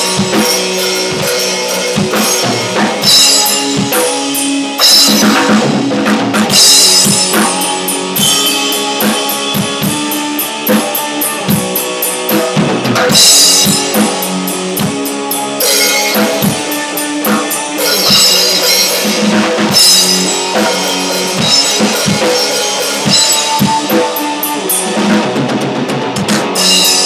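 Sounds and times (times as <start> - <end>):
electric guitar chords: 0.0 - 27.0.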